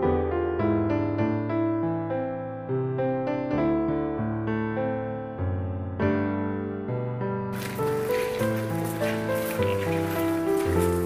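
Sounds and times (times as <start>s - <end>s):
slow solo piano melody: 7.6s - 11.0s.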